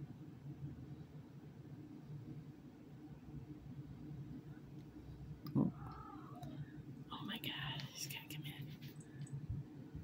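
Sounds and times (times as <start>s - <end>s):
person whispering: 7.1s - 9.0s.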